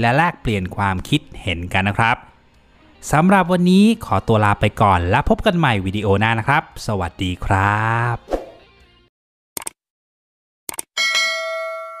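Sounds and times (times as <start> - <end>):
mouse clicks: 10.7 - 10.9
notification bell ringing: 11.0 - 12.0.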